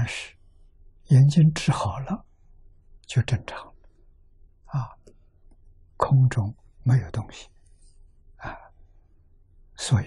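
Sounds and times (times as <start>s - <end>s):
man speaking: 0.0s - 0.4s, 1.0s - 2.3s, 3.0s - 3.8s, 4.7s - 5.1s, 6.0s - 7.6s, 9.8s - 10.0s.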